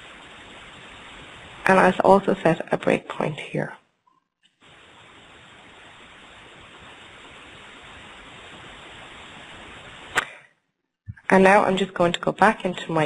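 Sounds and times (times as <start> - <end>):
background hiss: 0.0 - 3.8, 4.5 - 13.0.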